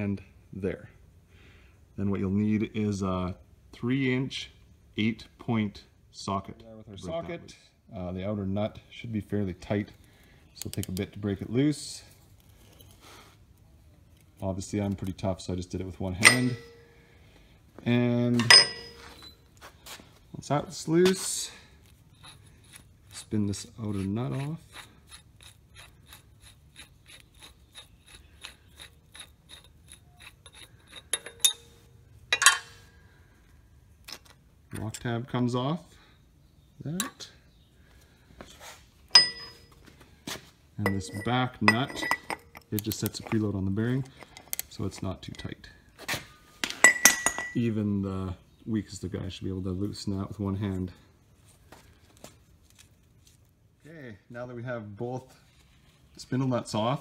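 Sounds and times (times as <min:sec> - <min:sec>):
steel parts clanking together: 0:16.2 - 0:16.8, 0:18.4 - 0:19.4, 0:28.4 - 0:32.8, 0:39.1 - 0:39.7, 0:40.8 - 0:43.4, 0:46.6 - 0:47.6
short metallic clink: 0:16.2 - 0:16.9, 0:18.4 - 0:19.4, 0:31.1 - 0:31.8, 0:32.4 - 0:32.8, 0:39.1 - 0:39.7, 0:40.9 - 0:42.7
nut turned off threads by hand: 0:21.1 - 0:31.7.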